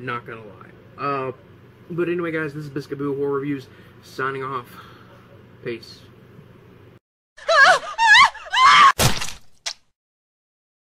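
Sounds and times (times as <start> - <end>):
high wavering voice-like cries: 7.4 - 9.0.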